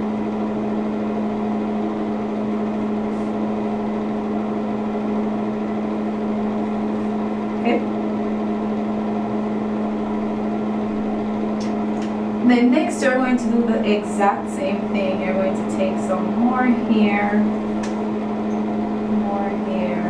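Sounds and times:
low fan or motor hum: 0.0s - 20.0s.

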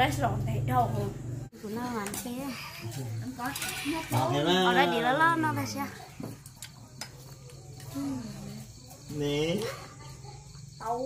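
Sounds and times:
quiet eating sounds: 1.5s - 11.0s.

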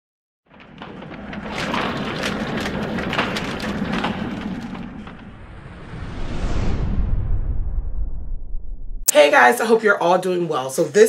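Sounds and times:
low rumble: 0.5s - 9.1s.

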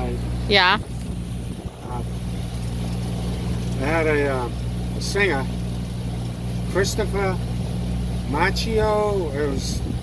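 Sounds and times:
outboard motor running: 0.0s - 10.0s.

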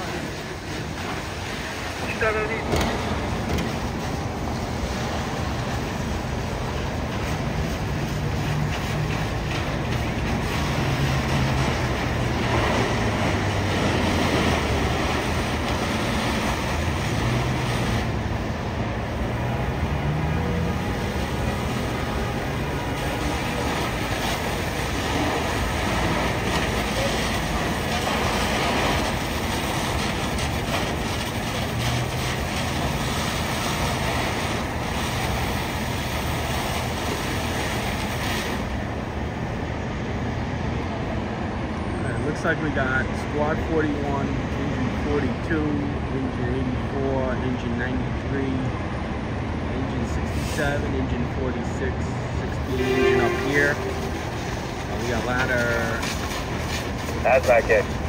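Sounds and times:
diesel engines roaring: 0.0s - 58.0s.

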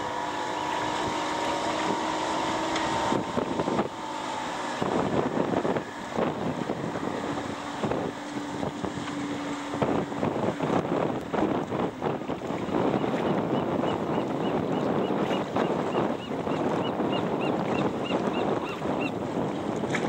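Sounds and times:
steady motor hum: 0.0s - 20.0s
wind buffeting microphone: 0.0s - 20.0s.

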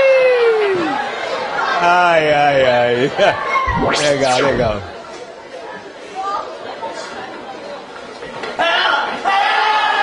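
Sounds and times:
chatter of people: 0.0s - 9.6s
steady background noise: 3.2s - 8.4s.

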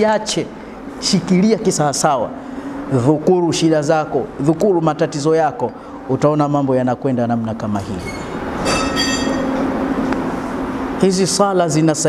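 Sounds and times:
mechanical hum and rumble: 0.0s - 12.0s
high-pitched metallic squeal: 8.0s - 9.7s.

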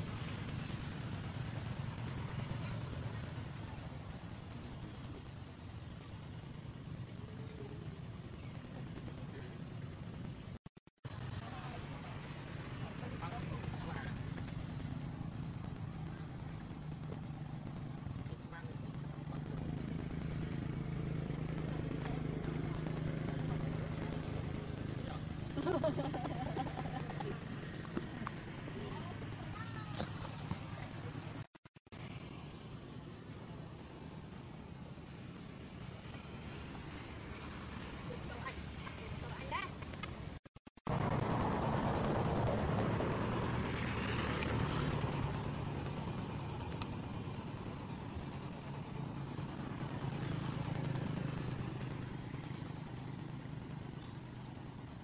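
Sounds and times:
steady background hiss: 0.0s - 31.4s, 32.0s - 55.0s
vehicle engine hum: 0.0s - 55.0s
faint voices: 11.1s - 31.4s
faint clicks: 41.9s - 48.9s.

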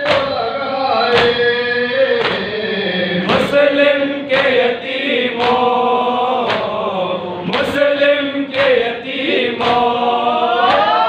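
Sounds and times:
chest-beating slaps: 0.0s - 0.4s, 2.2s - 2.5s, 4.3s - 5.8s, 6.4s - 6.8s, 7.4s - 7.9s, 8.5s - 10.9s
men chanting a lament: 0.0s - 11.0s.

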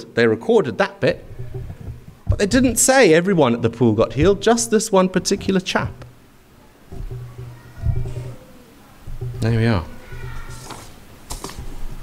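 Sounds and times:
low steady hum: 0.0s - 12.0s
paper rustling and clicking: 10.5s - 11.9s.

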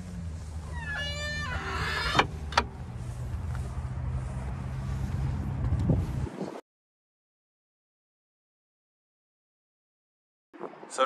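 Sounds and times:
wind buffeting microphone: 5.1s - 6.6s.

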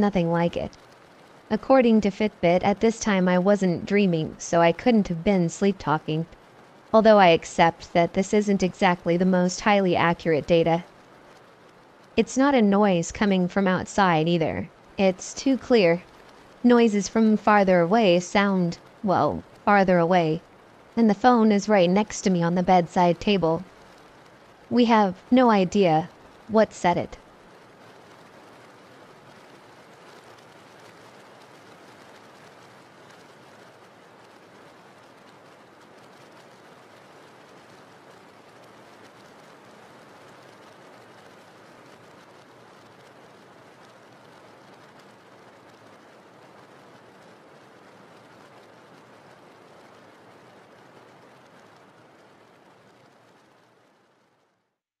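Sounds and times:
steady rain falling: 0.0s - 54.8s.

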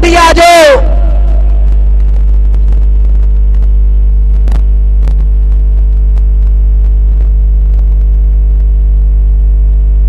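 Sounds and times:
loud electrical hum: 0.0s - 10.0s.

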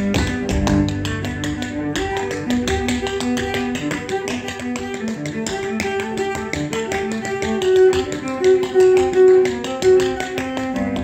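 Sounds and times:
bowed cello: 0.0s - 11.0s
tap shoes on wooden stage: 0.0s - 11.0s.

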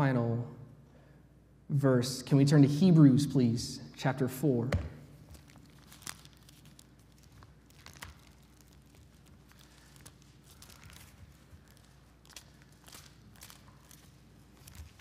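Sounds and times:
low room hum: 0.0s - 15.0s
bible pages rustling: 5.1s - 15.0s.

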